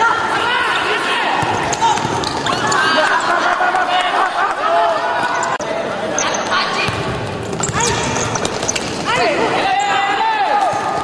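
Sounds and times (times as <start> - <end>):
players shouting in indoor hall: 0.0 - 5.6, 9.0 - 11.0.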